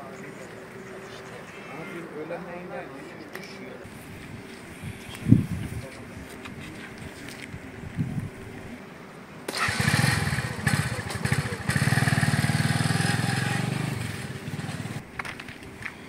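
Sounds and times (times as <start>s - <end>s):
vehicle engine running: 9.5s - 15.1s.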